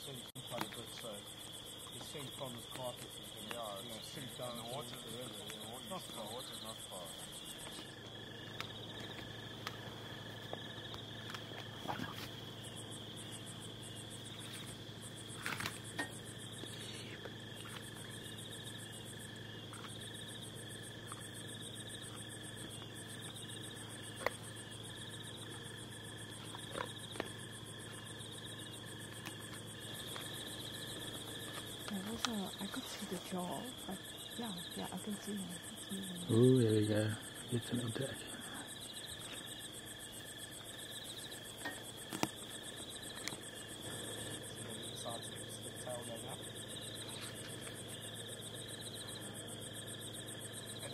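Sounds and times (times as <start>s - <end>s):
crickets and insects trilling: 0.0s - 50.9s.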